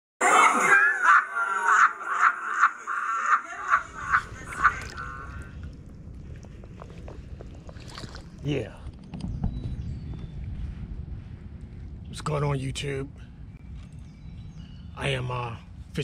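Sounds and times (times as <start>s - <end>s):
low outdoor rumble: 3.3s - 16.0s.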